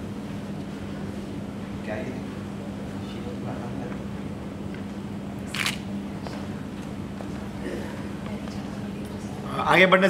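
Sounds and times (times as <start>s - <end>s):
steady low hum: 0.0s - 10.0s
camera shutter click: 5.5s - 5.8s.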